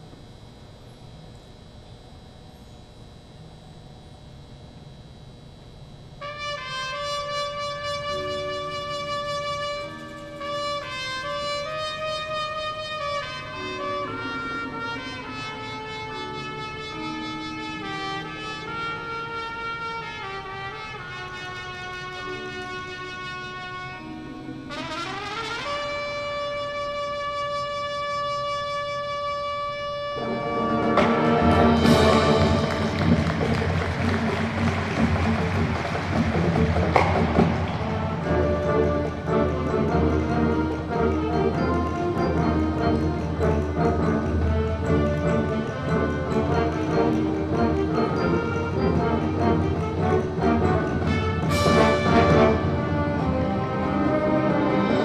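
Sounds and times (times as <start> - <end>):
marching band brass melody: 6.2 - 55.0.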